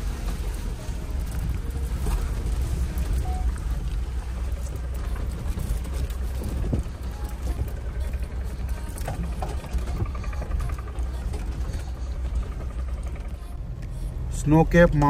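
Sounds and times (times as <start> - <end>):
vehicle knocks and rattles: 0.0 - 13.6
engine and tyres rumbling: 0.0 - 15.0.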